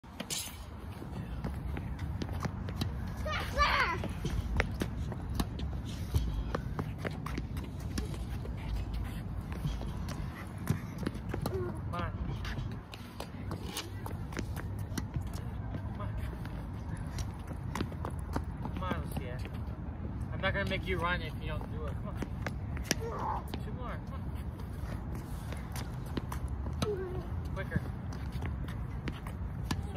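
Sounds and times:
tennis balls bouncing on court: 0.2s - 24.0s, 24.6s - 29.9s
footsteps on court: 0.2s - 29.9s.

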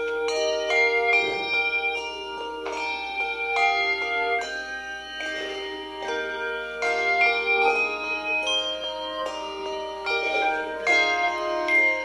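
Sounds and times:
handbell chords ringing: 0.0s - 12.0s.

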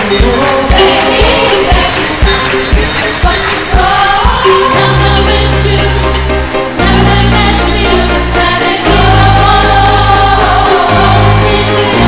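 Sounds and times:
steady bass line: 0.0s - 12.0s.

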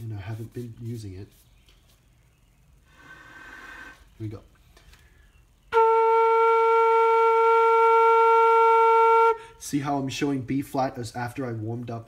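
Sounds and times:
flute playing long steady note: 5.6s - 9.6s.

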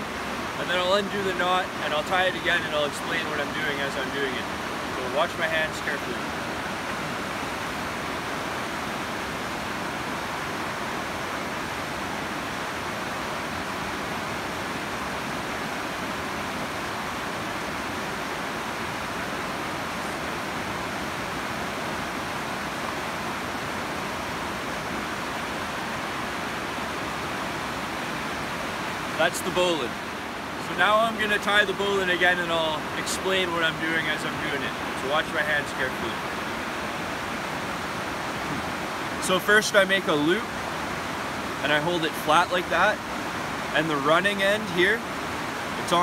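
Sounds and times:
river rapids rushing over rocks: 0.0s - 46.0s.

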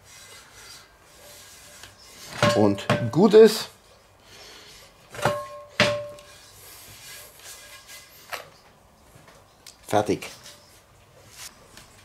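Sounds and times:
iron skillet knocking on table: 2.4s - 3.2s, 5.2s - 6.2s.

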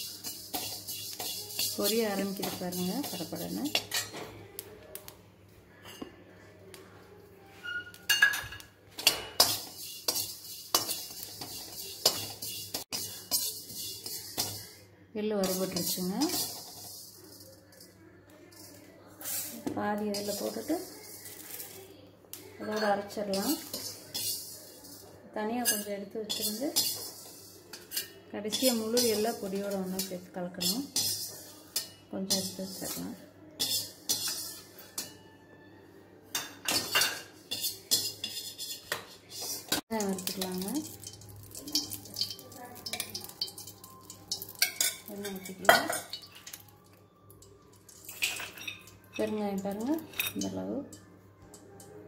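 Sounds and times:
metal ladle scraping a pan: 0.0s - 4.2s, 9.0s - 14.8s, 15.4s - 21.8s, 22.6s - 35.2s, 36.4s - 46.7s, 47.9s - 50.5s
metallic clatter: 0.0s - 4.2s, 9.0s - 14.7s.

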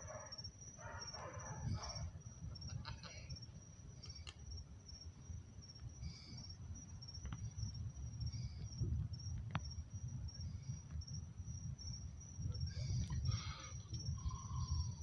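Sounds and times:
night insects trilling: 0.0s - 15.0s
low uneven rumble: 1.1s - 15.0s.

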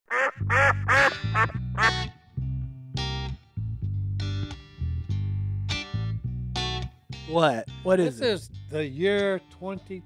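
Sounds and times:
duck quacks: 0.1s - 2.1s
intro music with bass: 0.4s - 9.2s.

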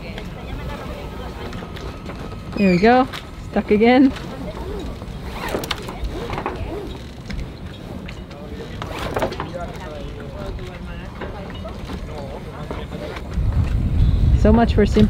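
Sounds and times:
low indistinct talk: 0.0s - 13.4s
steady low rumble: 13.2s - 15.0s.

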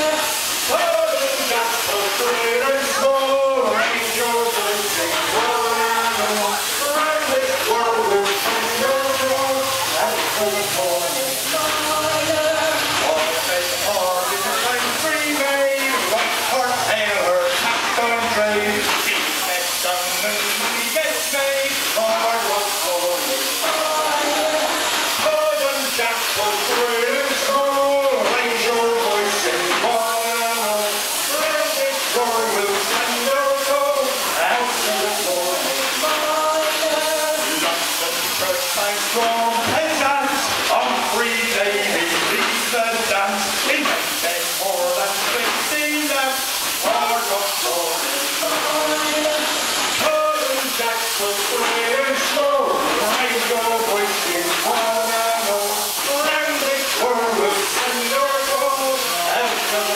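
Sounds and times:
crowd singing together: 0.0s - 59.9s
steam hissing: 0.0s - 59.9s.

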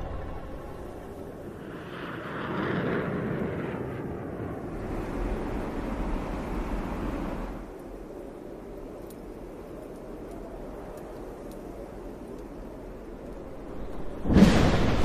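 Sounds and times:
rumbling whoosh of ships: 0.0s - 8.8s, 12.9s - 15.0s.

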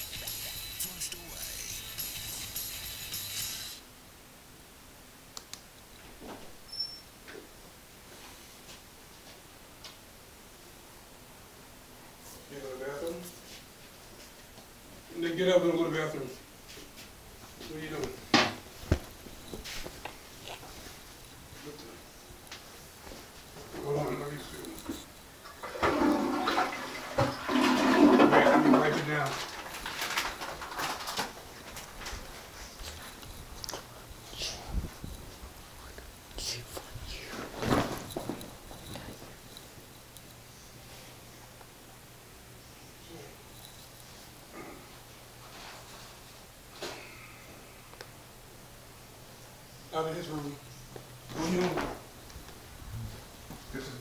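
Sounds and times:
thin high tone: 0.0s - 3.8s.

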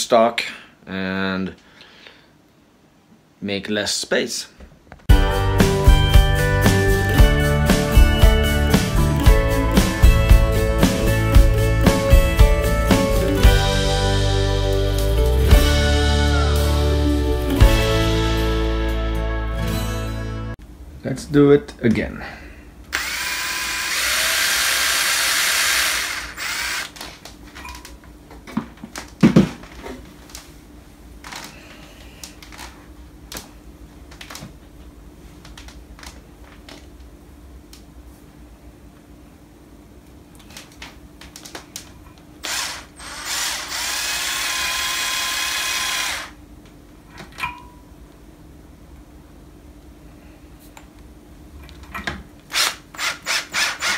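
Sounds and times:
cordless drill running: 22.9s - 27.0s, 42.4s - 46.4s, 52.5s - 53.9s.

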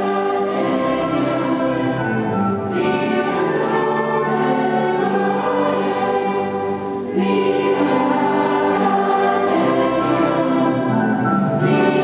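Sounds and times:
choir singing sustained chords: 0.0s - 12.0s.

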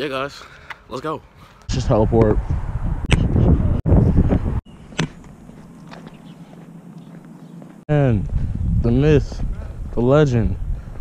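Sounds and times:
outdoor background: 0.0s - 11.0s
wind on microphone: 1.7s - 4.8s, 7.9s - 11.0s.

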